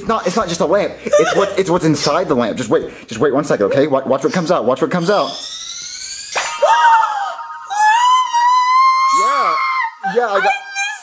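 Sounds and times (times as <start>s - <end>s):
high-pitched rising tone: 4.4s - 9.8s
short falling tone: 5.0s - 8.9s.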